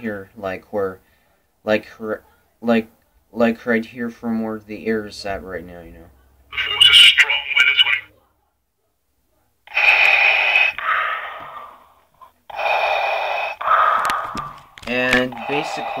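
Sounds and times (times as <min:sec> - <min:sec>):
mask breathing from small speaker: 0:09.7 - 0:16.0.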